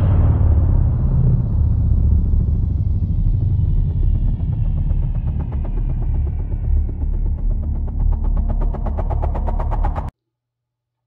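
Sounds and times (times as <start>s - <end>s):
deep rumble: 0.0s - 10.1s.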